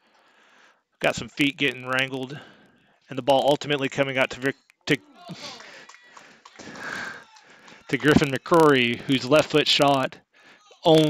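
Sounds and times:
man speaking: 1.0 - 5.8, 6.6 - 7.2, 7.8 - 10.2
man laughing: 5.1 - 5.9, 6.6 - 9.2.

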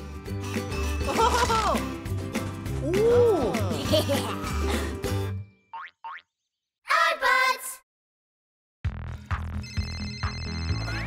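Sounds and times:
cartoon background music: 0.0 - 6.2, 9.2 - 11.0
cartoon character voice: 6.9 - 7.8.

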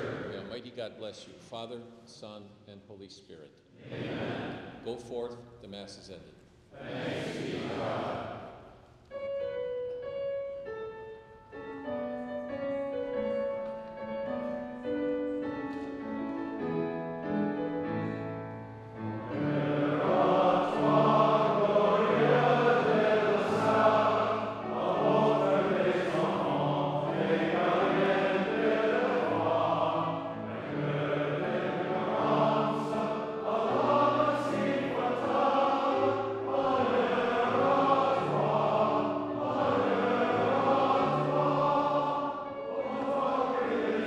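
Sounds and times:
voices singing a hymn: 0.0 - 1.8, 3.8 - 5.3, 6.7 - 8.7, 17.6 - 44.0.

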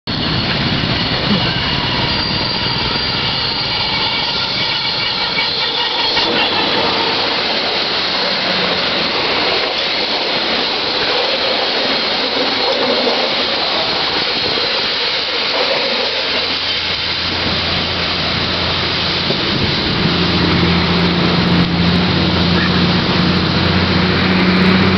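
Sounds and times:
coaches rolling on rails: 0.1 - 24.9
locomotive passing: 0.1 - 24.9.

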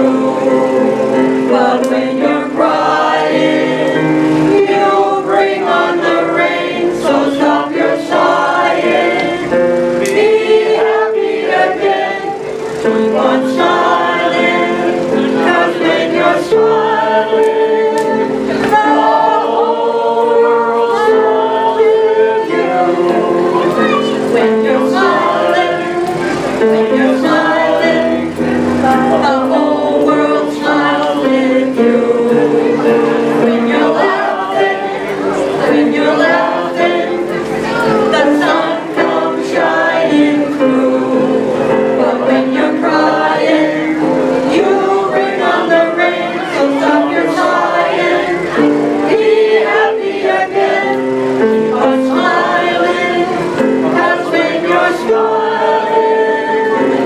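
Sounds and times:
choir singing long notes: 0.0 - 57.0.

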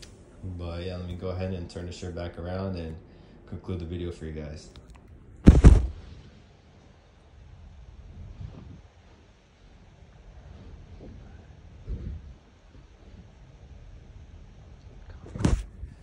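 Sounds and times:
small thump: 5.5 - 6.0.

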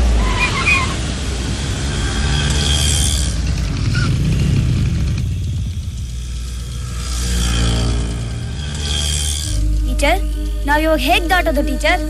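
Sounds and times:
car passing close: 0.0 - 9.7
vehicle engines running: 0.0 - 12.0
background music: 6.5 - 12.0.

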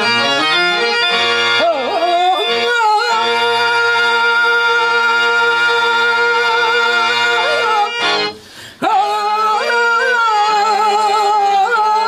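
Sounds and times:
harmonium drone: 0.0 - 12.0
man singing long notes: 0.8 - 12.0.

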